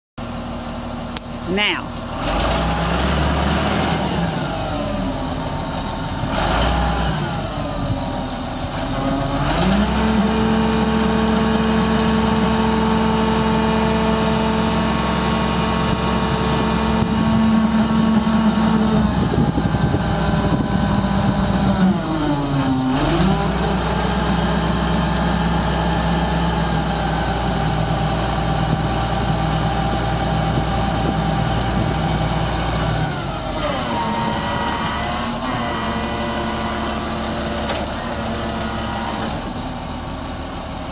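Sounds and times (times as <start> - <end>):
diesel engine revving: 0.2 - 40.9.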